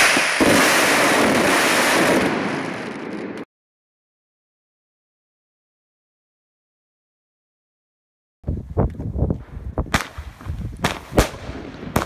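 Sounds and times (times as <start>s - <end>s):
fireworks crackling barrage: 0.0s - 3.5s, 9.4s - 12.0s.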